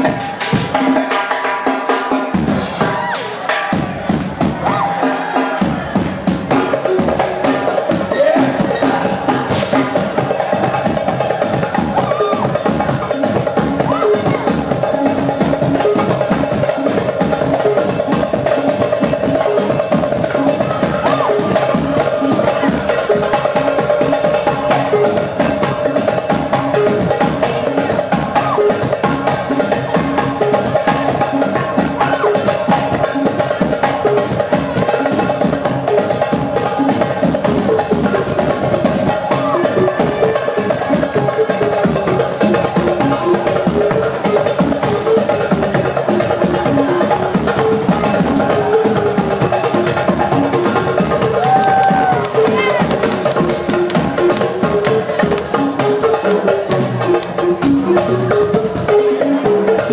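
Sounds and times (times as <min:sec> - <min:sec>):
drum kit: 0:00.0 - 0:59.9
goblet drum fast rhythm: 0:00.0 - 0:59.9.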